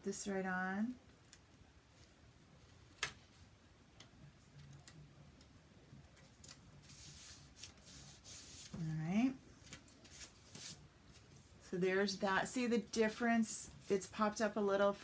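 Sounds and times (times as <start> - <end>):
paper rustling and rubbing: 6.4 - 8.8, 9.6 - 11.3.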